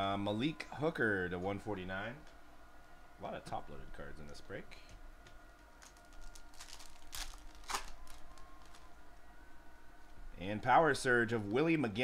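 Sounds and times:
cards rustling: 5.8s - 8.9s
foil wrappers crinkling: 5.8s - 8.9s.

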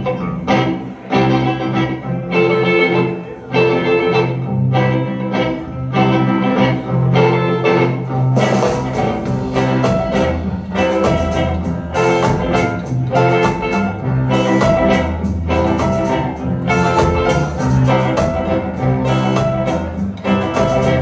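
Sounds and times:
double bass: 0.0s - 21.0s
electric guitars: 0.0s - 21.0s
saxophone: 0.0s - 21.0s
drum kit: 7.7s - 21.0s.

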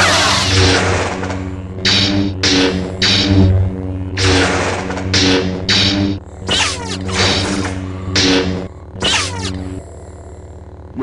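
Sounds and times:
lightsaber swing and clash hits: 0.0s - 9.7s
lightsaber electric hum: 0.0s - 11.0s.

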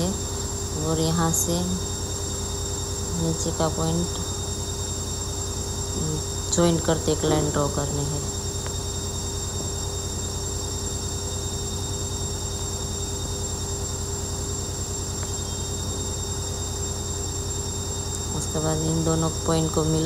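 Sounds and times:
droning hum with hiss: 0.0s - 20.0s.

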